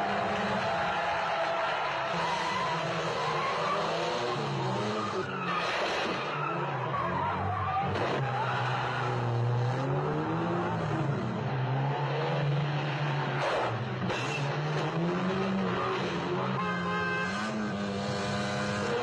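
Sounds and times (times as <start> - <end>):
car engines revving: 0.0 - 19.0.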